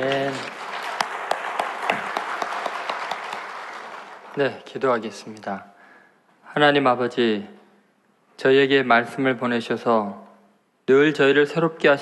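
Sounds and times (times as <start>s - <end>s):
congregation applauding: 0.0s - 5.3s.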